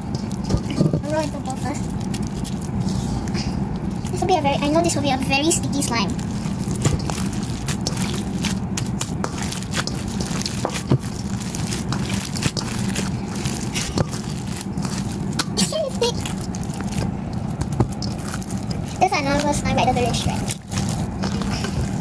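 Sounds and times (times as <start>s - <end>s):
slime crackling and squishing: 0.0s - 22.0s
steady low hum: 0.0s - 22.0s.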